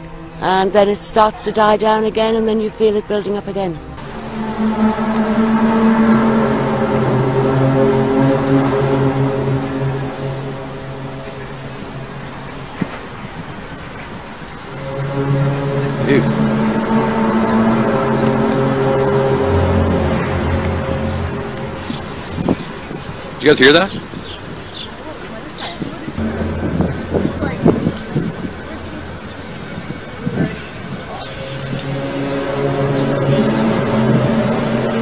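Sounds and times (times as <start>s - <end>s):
low drone of held tones: 0.0s - 35.0s.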